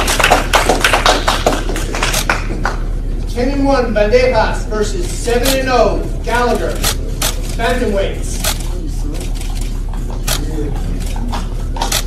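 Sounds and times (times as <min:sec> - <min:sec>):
steady low hum: 0:00.0 - 0:12.0
murmur of voices: 0:02.9 - 0:12.0.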